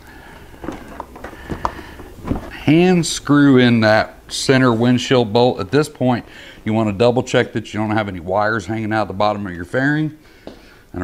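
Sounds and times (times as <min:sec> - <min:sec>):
light clicks and knocks of fairing: 0:00.5 - 0:02.6.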